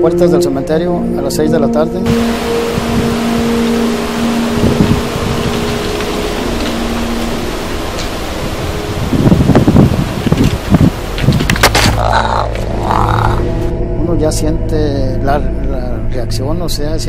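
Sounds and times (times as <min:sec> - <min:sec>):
low held drone: 0:02.0 - 0:17.0
uneven low rumbles: 0:02.0 - 0:17.0
loud rushing noise: 0:02.1 - 0:11.2.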